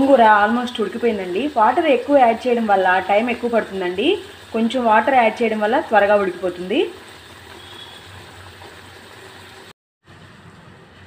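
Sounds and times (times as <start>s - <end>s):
pot bubbling: 0.0s - 9.7s.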